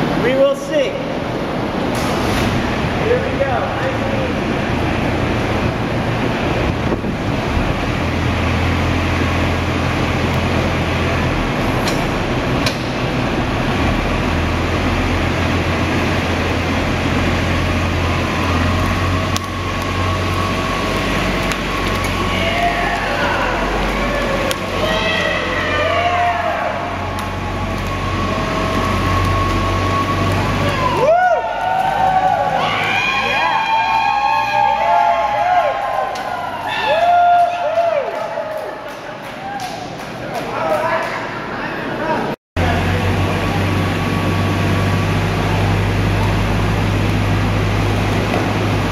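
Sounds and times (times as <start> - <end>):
utility vehicle engine running: 1.1 - 33.0, 42.6 - 48.9
people shouting and cheering: 22.0 - 42.3.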